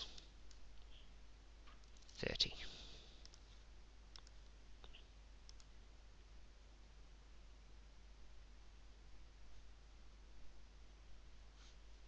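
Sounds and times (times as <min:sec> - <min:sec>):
mouse clicks: 0:03.2 - 0:03.4, 0:04.1 - 0:05.7
computer keyboard keystrokes: 0:04.1 - 0:04.4.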